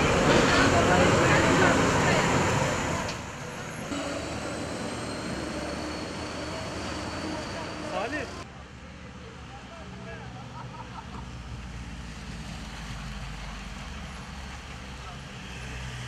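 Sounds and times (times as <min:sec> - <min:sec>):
voices: 0:00.0 - 0:10.9
bus engine and road noise: 0:00.0 - 0:16.0
street background: 0:00.0 - 0:16.0.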